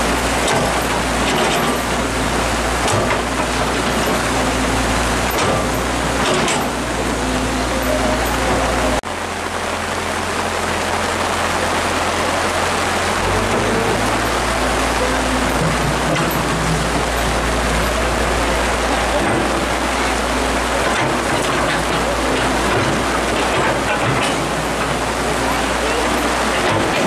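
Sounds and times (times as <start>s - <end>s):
excavator diesel engine running: 0.0s - 27.0s
heavy rain hissing: 0.0s - 27.0s
low engine hum: 0.0s - 27.0s.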